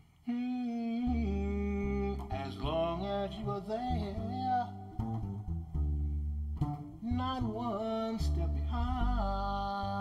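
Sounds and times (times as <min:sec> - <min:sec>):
plucked double bass: 0:00.8 - 0:10.0.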